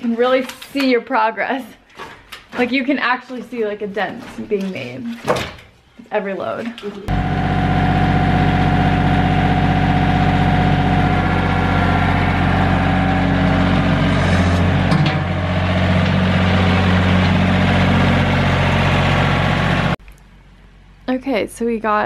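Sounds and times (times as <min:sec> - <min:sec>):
tractor engine running: 0:07.1 - 0:20.0.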